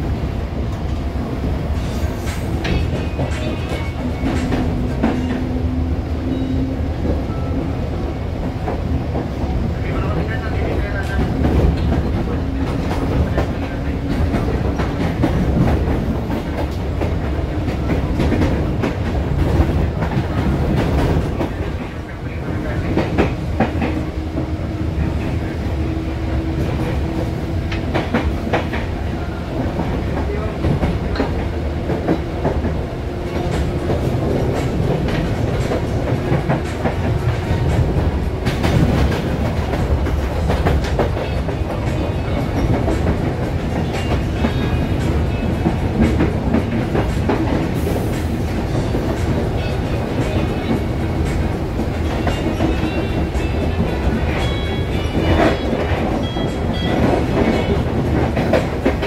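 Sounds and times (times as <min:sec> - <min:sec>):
train carriage rumbling: 0:00.0 - 0:59.0.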